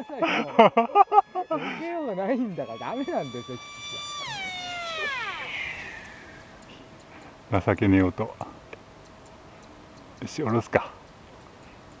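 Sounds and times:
electric motor and propeller whining: 0:01.2 - 0:06.6
rushing hiss of air: 0:05.4 - 0:06.6.

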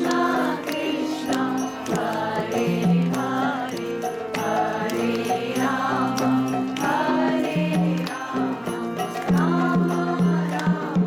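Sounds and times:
group chanting: 0:00.0 - 0:11.0
percussive strikes: 0:00.0 - 0:11.0.

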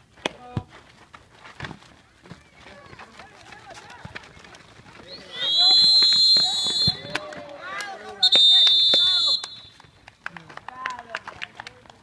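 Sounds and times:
players' voices: 0:02.3 - 0:12.0
referee's whistle blasts: 0:05.2 - 0:07.2, 0:08.2 - 0:09.8.

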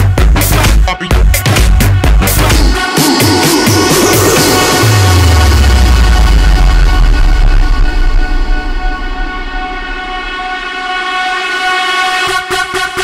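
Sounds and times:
fast pulsing rhythm: 0:00.0 - 0:10.8
electronic dance music: 0:00.0 - 0:13.0
held synth chord: 0:02.7 - 0:13.0.

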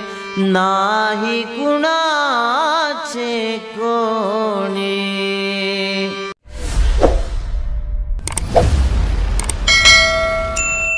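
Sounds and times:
whoosh: 0:06.4 - 0:10.6
bright ringing ding: 0:09.7 - 0:10.9.

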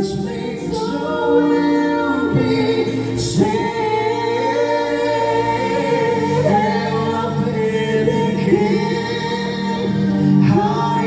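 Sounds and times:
musical accompaniment: 0:00.0 - 0:11.0.

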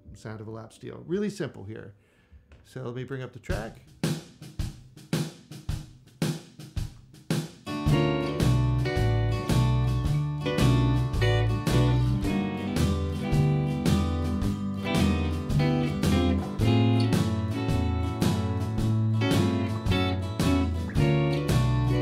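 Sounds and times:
drums: 0:02.5 - 0:22.0
bass guitar: 0:07.7 - 0:22.0
electric guitar sliding chords: 0:07.9 - 0:22.0.

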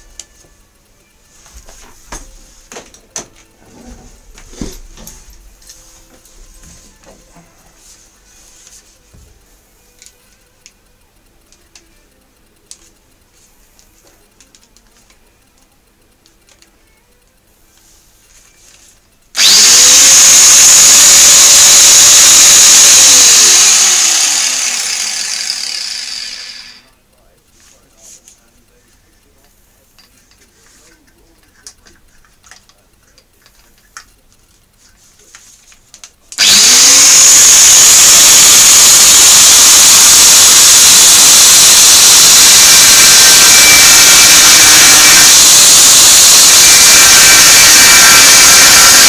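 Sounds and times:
angle grinder cutting steel: 0:19.4 - 0:26.9, 0:36.4 - 0:49.0.

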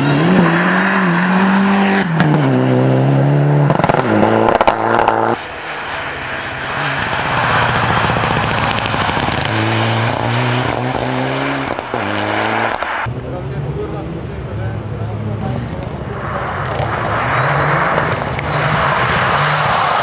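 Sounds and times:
rally car engine revving: 0:00.0 - 0:13.1, 0:15.0 - 0:20.0
engine crackling pops: 0:07.8 - 0:13.1.

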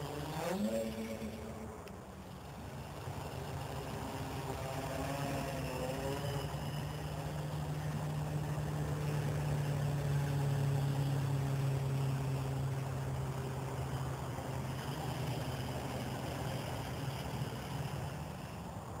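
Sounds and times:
quadcopter propellers whirring: 0:00.0 - 0:19.0.

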